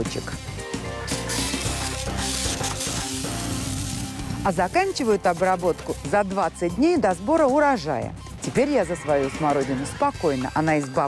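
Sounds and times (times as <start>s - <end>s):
background music: 0.0s - 11.0s
pressure sprayer nozzle hissing: 1.0s - 6.0s.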